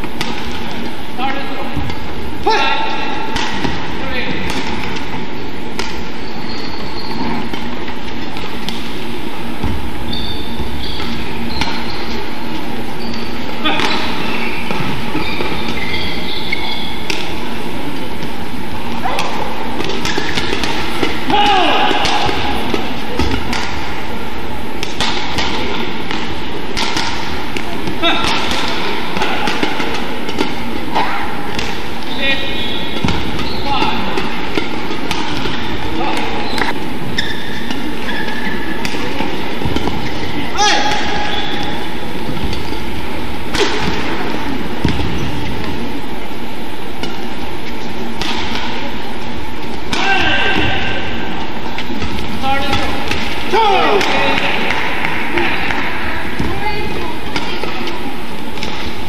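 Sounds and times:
racket striking shuttlecock: 0.0s - 1.0s, 1.8s - 12.2s, 12.8s - 46.3s, 46.9s - 59.0s
crowd murmur: 0.0s - 59.0s
shoes squeaking on court: 4.2s - 25.0s, 25.6s - 48.2s.

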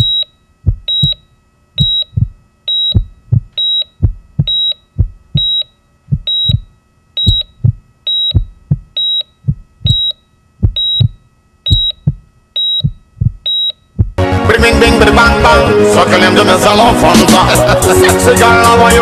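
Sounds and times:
low thumps: 0.0s - 1.2s, 1.8s - 14.2s
high electronic beep: 0.9s - 1.2s, 1.8s - 4.8s, 5.4s - 5.7s, 6.3s - 9.3s, 9.9s - 10.2s, 10.8s - 12.0s, 12.6s - 13.8s.

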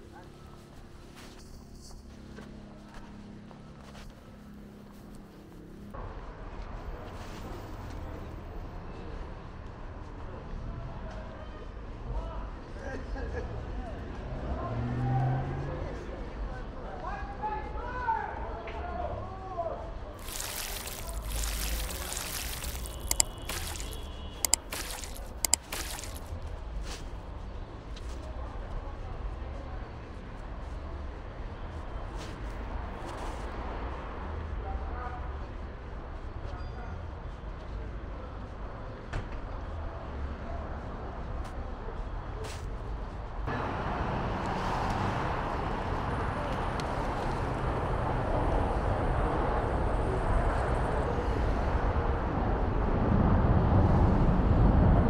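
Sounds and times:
low traffic rumble: 37.8s - 55.0s.

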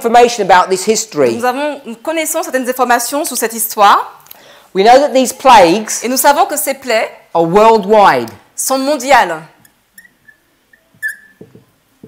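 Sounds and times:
marker squeaking on whiteboard: 9.6s - 11.8s.

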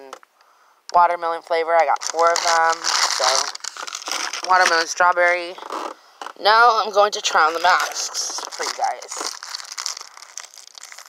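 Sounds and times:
plastic packaging crinkling: 1.8s - 11.0s.

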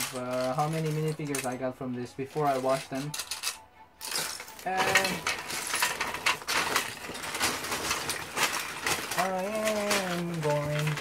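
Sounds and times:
plastic bricks clattering: 0.0s - 1.6s, 2.4s - 11.0s.

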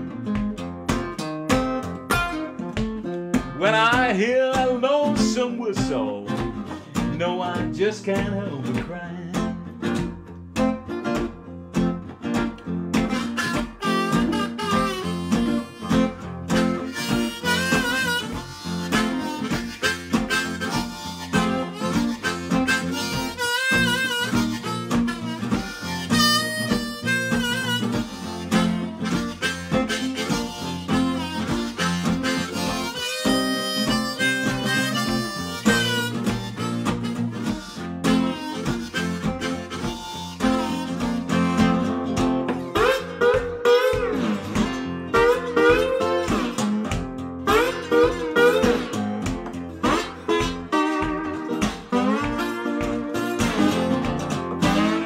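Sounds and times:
strummed guitar rhythm: 0.0s - 55.0s
harmonica bending notes: 10.6s - 55.0s.

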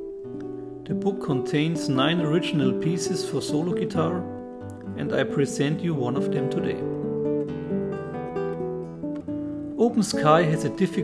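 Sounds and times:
classical guitar music: 0.0s - 11.0s.

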